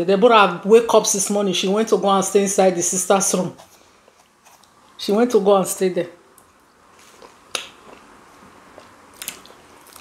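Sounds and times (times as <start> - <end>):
lip smack: 7.5 - 7.8
wet chewing: 8.7 - 10.0.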